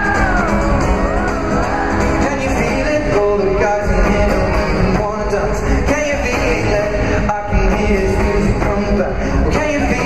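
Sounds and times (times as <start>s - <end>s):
guitar: 0.0s - 10.0s
live pop music: 0.0s - 10.0s
person singing: 0.0s - 10.0s.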